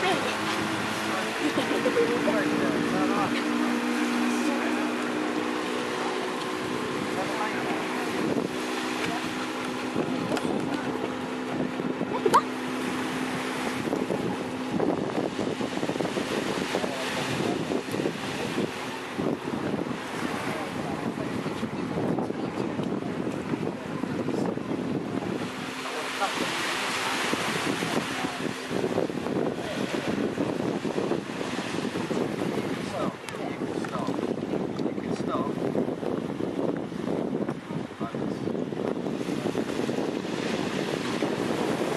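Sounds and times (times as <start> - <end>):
engine droning: 0.0 - 23.8
small waves washing on shore: 0.0 - 41.9
wind buffeting microphone: 0.0 - 41.9.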